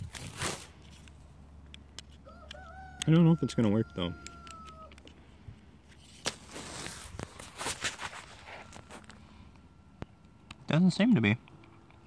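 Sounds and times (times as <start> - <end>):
rustling and handling noise: 0.0 - 2.6, 4.4 - 9.6
rooster crowing: 2.2 - 5.0.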